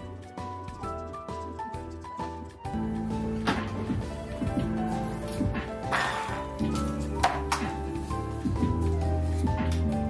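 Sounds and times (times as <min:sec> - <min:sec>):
background music with bass line: 0:00.4 - 0:10.0.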